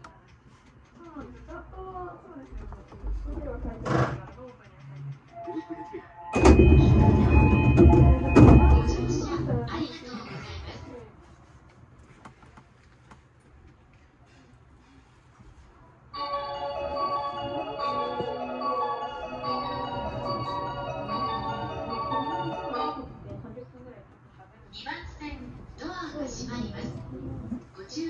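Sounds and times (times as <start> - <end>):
platform chime melody: 6.3 - 9.3, 16.2 - 23.2.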